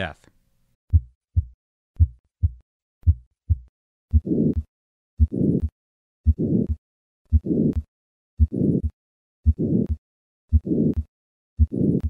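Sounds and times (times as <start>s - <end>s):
heart murmur: 0.9s - 5.7s, 6.3s - 12.0s
heartbeat lub-dub: 0.9s - 5.7s, 6.3s - 12.0s.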